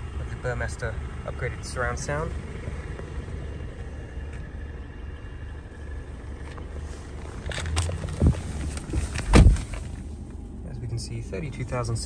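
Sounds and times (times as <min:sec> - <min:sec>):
low rumble in car cabin: 0:00.0 - 0:12.0
heavy thump: 0:07.5 - 0:10.0.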